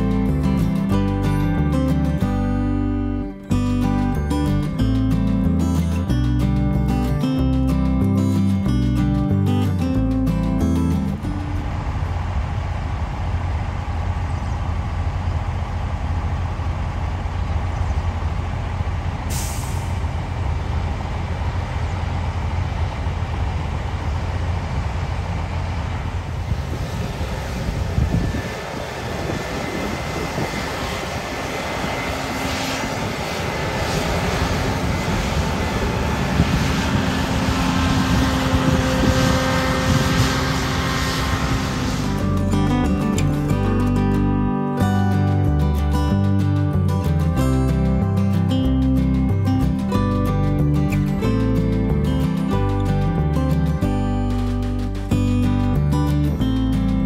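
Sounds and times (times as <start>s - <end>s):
combine harvester engine drone: 0.0s - 57.0s
machine whine: 11.1s - 44.4s
brief hiss: 19.3s - 20.0s.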